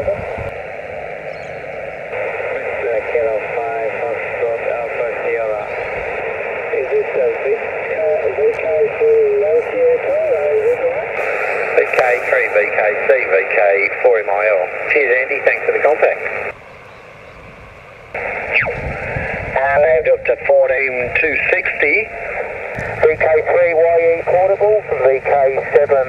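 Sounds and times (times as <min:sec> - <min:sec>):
radio voice: 0:00.0 - 0:00.6, 0:02.1 - 0:16.5, 0:18.2 - 0:26.0
radio band hiss: 0:00.0 - 0:16.6, 0:18.1 - 0:26.0.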